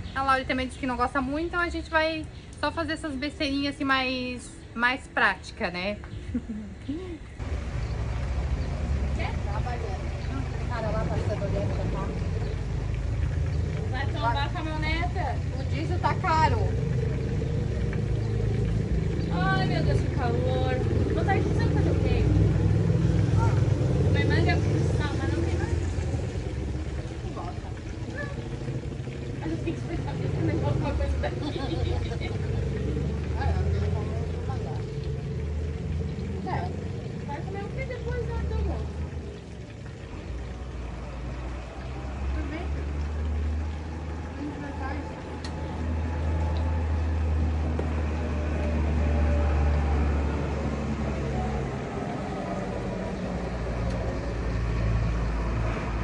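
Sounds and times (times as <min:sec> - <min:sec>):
indistinct voices: 0:08.9 - 0:56.0.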